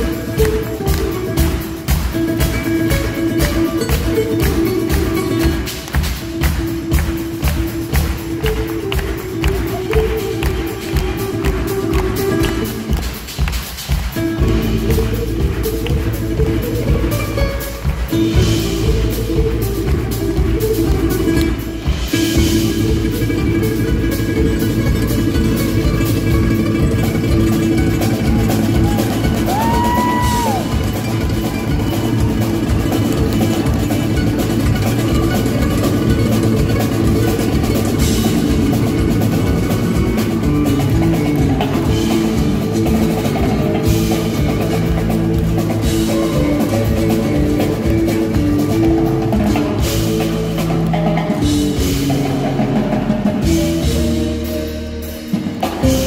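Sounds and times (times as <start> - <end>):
drum kit and percussion: 0.0 - 56.0
nylon-string guitar: 0.0 - 56.0.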